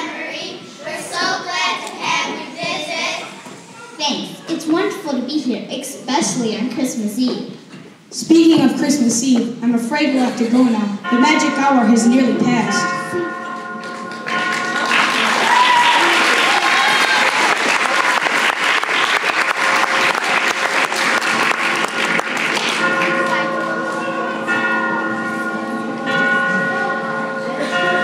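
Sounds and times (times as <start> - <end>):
audience applauding: 13.8 - 23.8.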